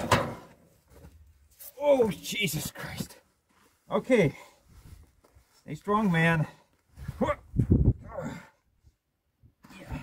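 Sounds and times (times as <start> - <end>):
man grunting with effort: 7.2 - 8.6.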